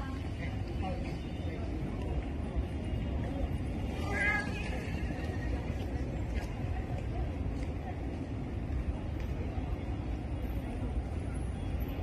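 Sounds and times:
faint voices: 0.0s - 12.0s
low street rumble: 0.0s - 12.0s.

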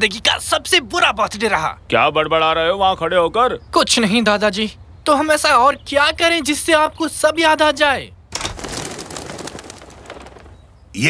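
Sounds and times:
pigeon wings flapping: 8.4s - 10.7s.

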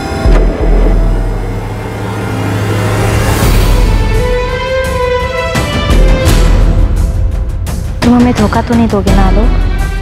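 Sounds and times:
car engine pulling away: 0.0s - 4.2s.

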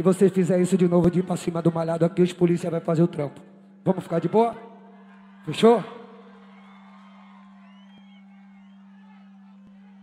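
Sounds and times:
crowd whoops: 4.9s - 10.0s.

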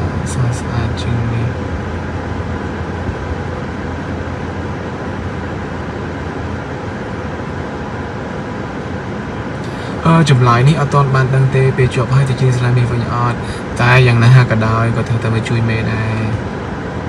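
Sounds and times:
car engine and road hum: 0.0s - 17.0s.

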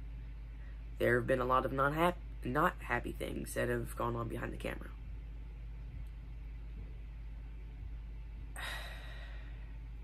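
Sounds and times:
low hum: 0.0s - 10.0s
boy sighing: 8.6s - 9.6s.

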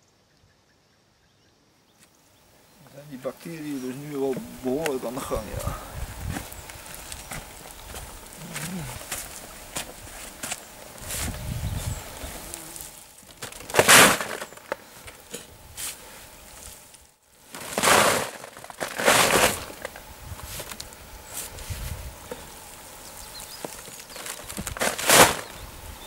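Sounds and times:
grass dropped into big bag: 3.0s - 25.6s
pitchfork rustling dry grass: 3.2s - 26.0s.

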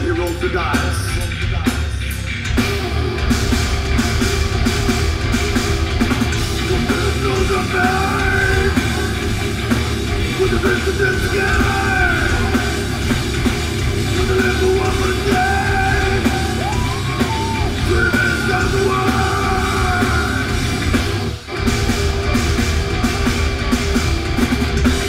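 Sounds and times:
bass guitar: 0.0s - 25.0s
distorted electric guitars: 0.0s - 25.0s
drum kit hit hard: 2.6s - 25.0s.

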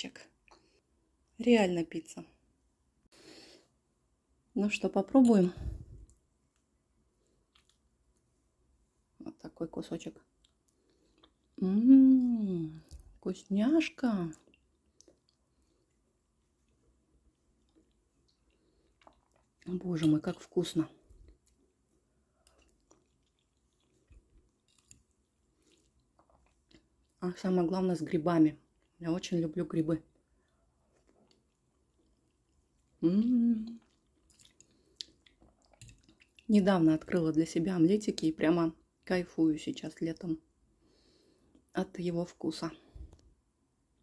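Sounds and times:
faint chewing: 5.3s - 8.3s, 10.4s - 11.6s, 14.3s - 27.2s, 30.0s - 37.3s.

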